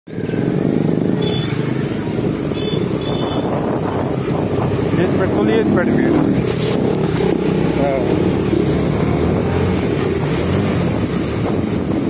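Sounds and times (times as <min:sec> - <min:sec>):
motorcycle engine running: 0:00.1 - 0:12.0.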